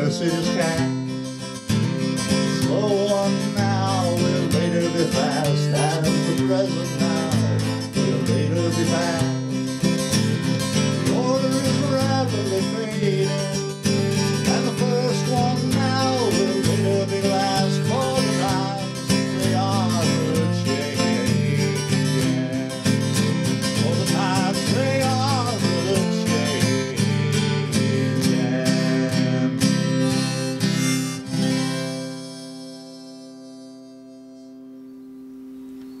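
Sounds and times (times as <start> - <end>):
harmonica melody: 0.0 - 36.0
strummed acoustic guitar: 0.0 - 36.0.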